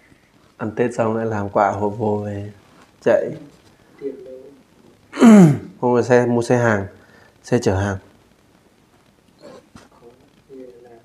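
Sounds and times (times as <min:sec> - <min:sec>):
faint animal call: 0:09.4 - 0:10.7.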